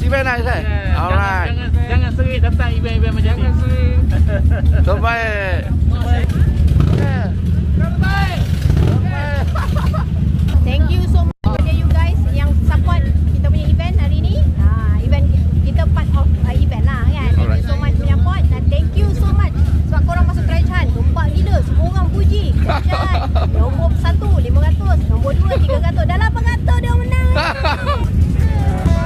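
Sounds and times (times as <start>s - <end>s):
low rumble: 0.0s - 29.0s
voices: 0.0s - 29.0s
woman talking: 10.6s - 27.6s.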